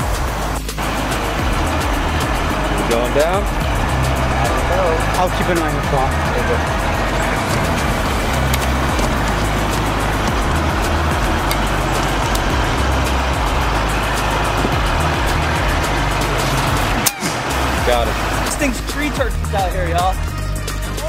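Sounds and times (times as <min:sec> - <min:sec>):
background music with bass: 0:00.0 - 0:21.0
motor traffic rumble: 0:00.0 - 0:21.0.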